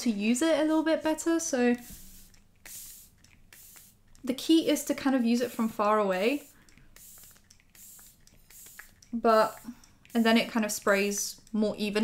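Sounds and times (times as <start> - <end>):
spray bottle hissing: 1.7 - 4.2, 5.3 - 11.2.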